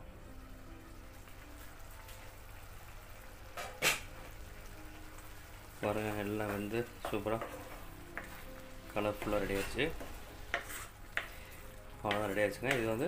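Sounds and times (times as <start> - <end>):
pan simmering crackle: 0.0 - 13.0.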